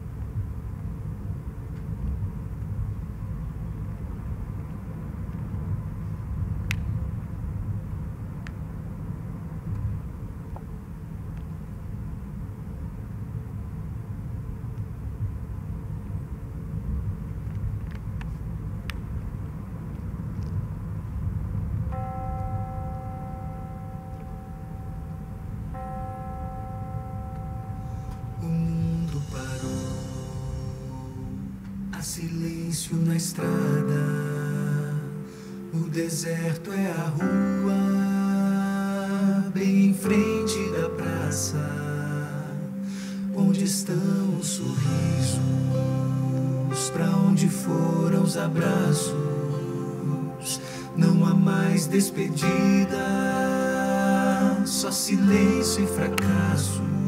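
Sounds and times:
low steady rumble: 0:00.0 - 0:57.0
held synth notes: 0:21.9 - 0:38.8, 0:39.6 - 0:57.0.

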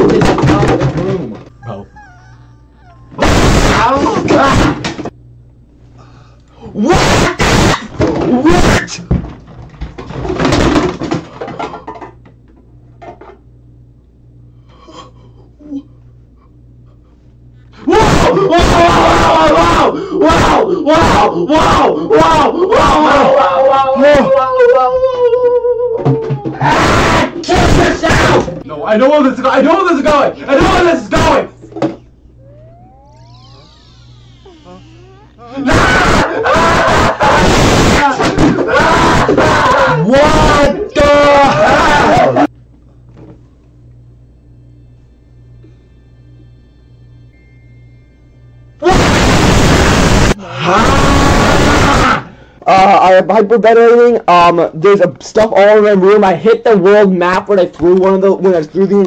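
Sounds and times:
knocks and thuds: 0:00.0 - 0:01.5, 0:09.1 - 0:11.9
steady low hum: 0:00.0 - 0:39.2, 0:39.9 - 0:50.8
man yelling and screaming: 0:17.8 - 0:28.5, 0:30.3 - 0:31.5, 0:35.5 - 0:42.5, 0:50.0 - 0:52.9.

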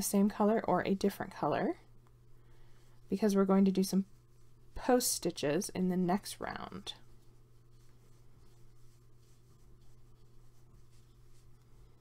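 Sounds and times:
steady low hum: 0:00.0 - 0:12.0
yarn rubbing over crochet hook: 0:03.0 - 0:12.0.

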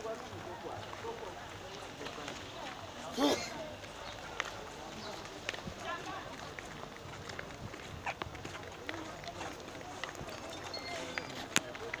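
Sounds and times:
footsteps on paved road: 0:00.0 - 0:12.0
indistinct chatter: 0:00.0 - 0:12.0.

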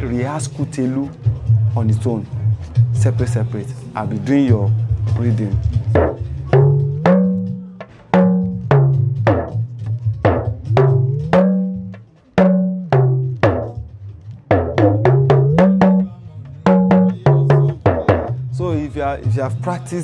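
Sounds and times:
talking drum rhythm: 0:00.0 - 0:20.0.

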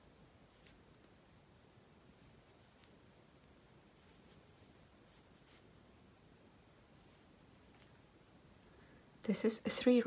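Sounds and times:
thread drawn through beads: 0:02.3 - 0:03.0.

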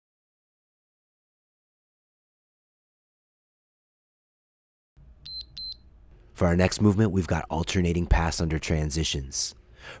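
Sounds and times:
short high electronic beeps: 0:05.2 - 0:05.8.

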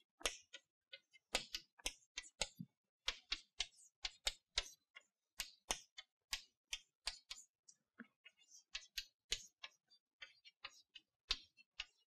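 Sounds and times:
chalk tapping on a blackboard: 0:00.2 - 0:07.6, 0:08.2 - 0:12.0.

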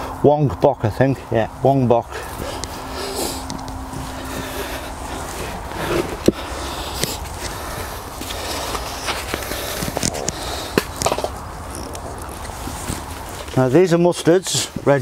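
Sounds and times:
steady low rumble: 0:00.0 - 0:14.1
hands scraping and rustling soil: 0:01.6 - 0:15.0.

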